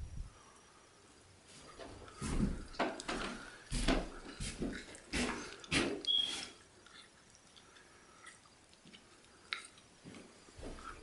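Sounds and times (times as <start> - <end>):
dull footsteps on floor: 1.8 - 6.0.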